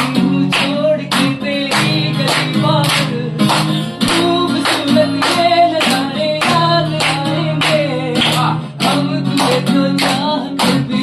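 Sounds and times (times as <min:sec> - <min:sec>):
acoustic guitar strummed: 0:00.0 - 0:11.0
man singing: 0:00.0 - 0:11.0
people clapping along: 0:00.0 - 0:11.0.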